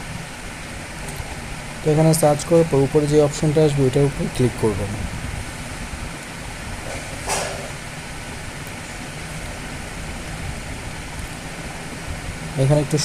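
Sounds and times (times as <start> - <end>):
steady background noise: 0.0 - 13.0
short hiss: 6.8 - 7.8.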